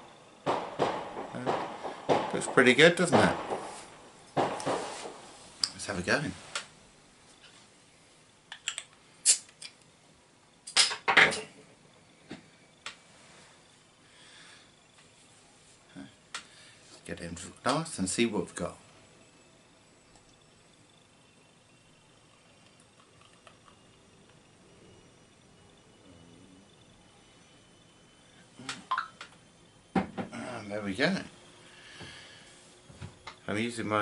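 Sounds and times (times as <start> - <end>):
firework bang: 0.4 - 5.2
soft faint hiss: 1.2 - 34.0
crackling firework pops: 4.4 - 5.2.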